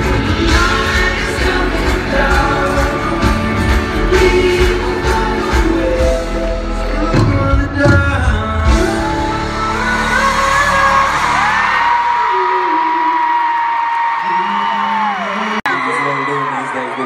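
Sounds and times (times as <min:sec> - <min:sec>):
live pop band: 0:00.0 - 0:17.0
crowd screaming: 0:10.2 - 0:17.0.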